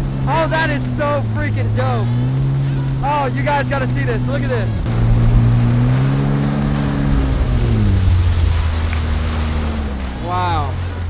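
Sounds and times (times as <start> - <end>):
jet ski engine: 0.0 - 11.0
water rushing along hull: 0.0 - 11.0.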